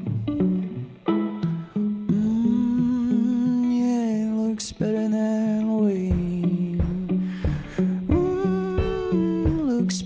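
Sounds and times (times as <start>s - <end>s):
softly plucked guitar: 0.0s - 10.0s
man humming: 2.1s - 4.5s, 6.1s - 10.0s.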